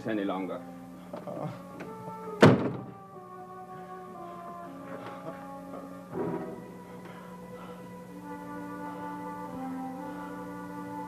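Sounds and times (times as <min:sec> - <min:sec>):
background music of held tones: 0:00.0 - 0:11.0
body thudding on floor: 0:02.4 - 0:03.0.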